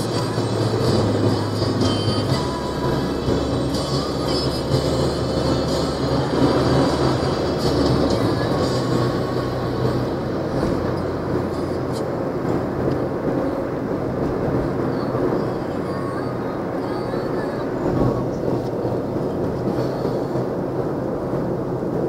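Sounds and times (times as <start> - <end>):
bus engine running: 0.0 - 22.0
tyre and road noise: 0.0 - 22.0.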